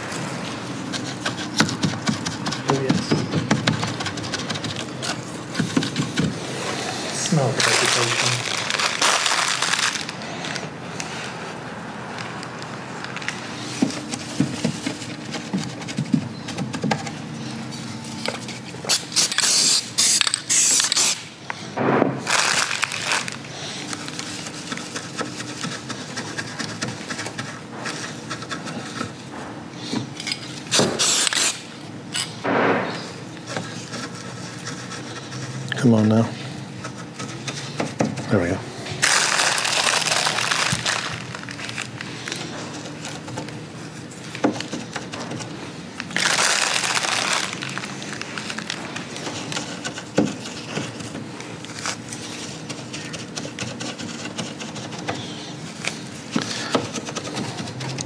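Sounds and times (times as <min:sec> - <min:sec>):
aerosol spray can spraying: 0:30.8 - 0:31.6.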